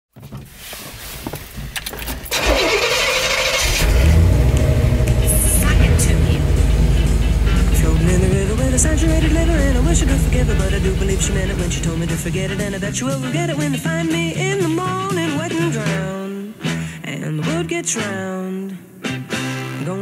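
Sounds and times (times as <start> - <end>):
truck engine cranking and rumbling: 1.7 - 14.3
song with singing voice: 3.8 - 20.0.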